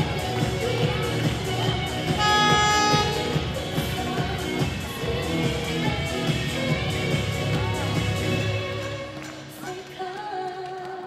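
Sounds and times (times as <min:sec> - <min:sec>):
pop song over arena speakers: 0:00.0 - 0:11.0
sung note held: 0:02.2 - 0:03.4.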